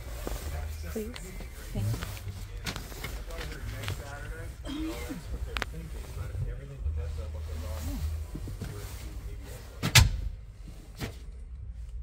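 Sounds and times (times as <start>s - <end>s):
person shifting in a seat: 0.0s - 6.6s
low rustling and handling noise: 0.0s - 12.0s.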